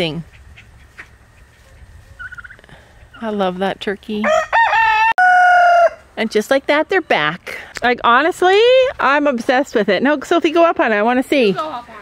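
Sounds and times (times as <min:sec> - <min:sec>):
young turkey peeping: 0:00.1 - 0:03.4.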